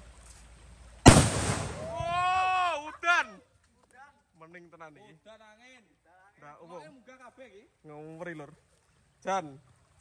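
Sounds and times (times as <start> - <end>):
firecracker bang: 1.0 - 2.2.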